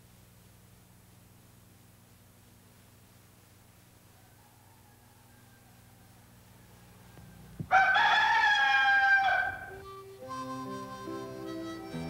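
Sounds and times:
rooster crowing: 0:04.0 - 0:09.9
music with held notes: 0:09.7 - 0:12.0.

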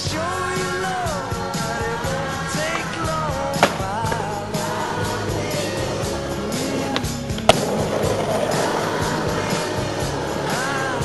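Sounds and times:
music with singing: 0:00.0 - 0:11.0
skateboard clack: 0:00.5 - 0:11.0
skateboard wheels rolling on asphalt: 0:02.3 - 0:11.0.

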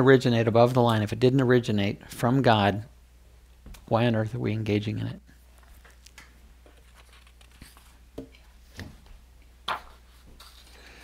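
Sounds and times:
low room hum: 0:00.0 - 0:11.0
paper rustling and crinkling: 0:05.6 - 0:08.0, 0:09.7 - 0:11.0.

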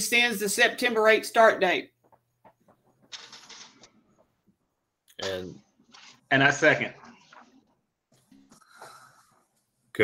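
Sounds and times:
faint breath noise: 0:08.5 - 0:09.7.

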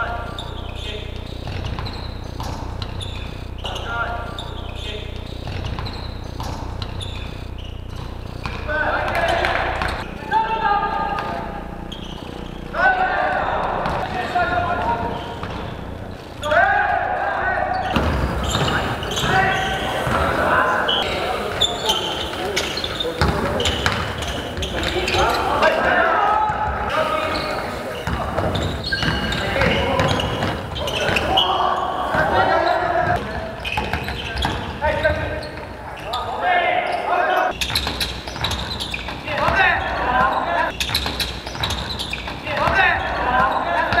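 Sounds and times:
short high squeaks: 0:00.0 - 0:10.1, 0:10.9 - 0:13.0, 0:13.9 - 0:25.7, 0:26.9 - 0:43.9
basketball bouncing on court: 0:00.0 - 0:10.2, 0:11.0 - 0:16.5, 0:17.6 - 0:35.8, 0:37.5 - 0:44.0
players calling out: 0:00.0 - 0:44.0.

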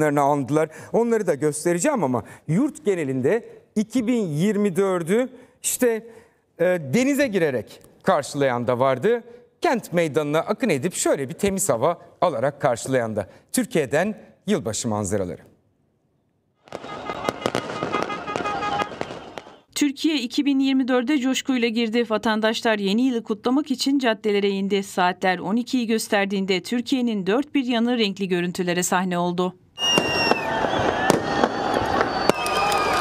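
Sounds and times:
fireworks bangs: 0:16.6 - 0:19.7, 0:29.8 - 0:33.0
fireworks whistling: 0:16.6 - 0:19.7, 0:29.8 - 0:33.0
crowd noise: 0:16.7 - 0:19.6, 0:29.8 - 0:33.0.

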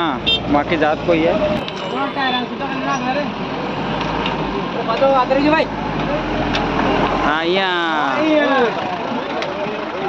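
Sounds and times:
men talking: 0:00.0 - 0:03.5, 0:04.4 - 0:10.0
truck engine idling: 0:04.6 - 0:10.0.

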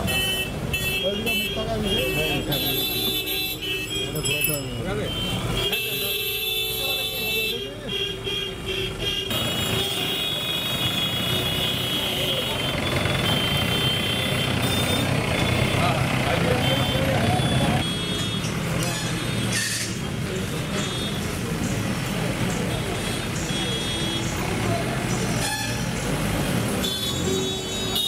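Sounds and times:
many voices talking: 0:00.0 - 0:08.3, 0:09.0 - 0:26.4
traffic engines: 0:00.0 - 0:28.0.

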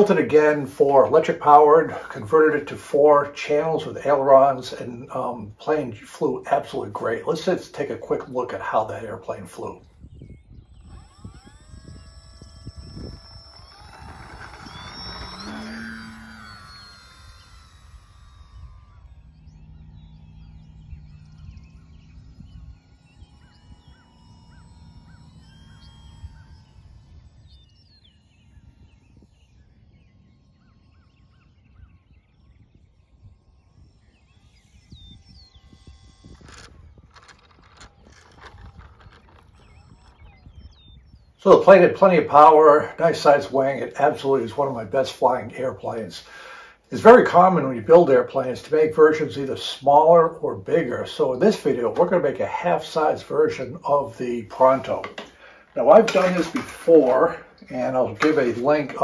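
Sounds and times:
electric motor and propeller whine: 0:00.0 - 0:59.0.

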